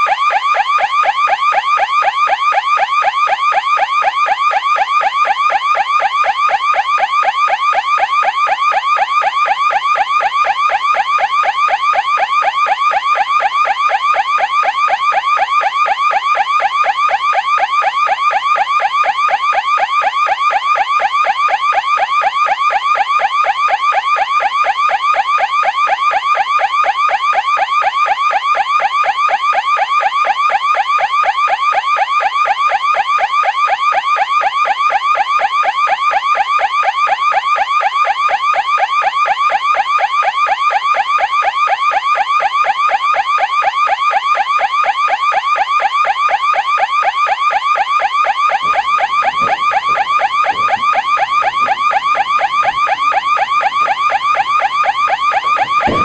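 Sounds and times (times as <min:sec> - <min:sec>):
electronic alarm pulsing tone: 0:39.9 - 0:56.0.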